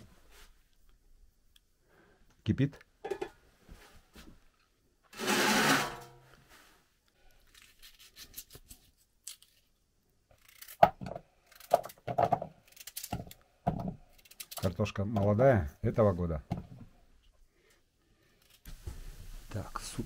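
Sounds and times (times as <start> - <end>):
loud rasping scrape: 5.2 - 6.1
knife peeling and cutting potatoes: 5.2 - 6.2, 7.3 - 17.0.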